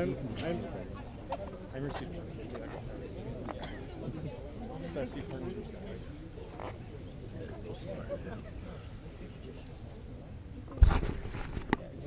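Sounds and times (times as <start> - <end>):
murmur of many voices: 0.0 - 12.0
camera thump and rumble: 10.7 - 11.9.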